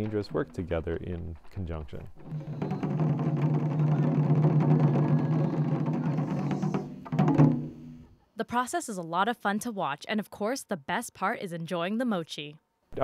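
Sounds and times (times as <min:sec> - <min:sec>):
taiko drum roll: 0:02.1 - 0:08.1.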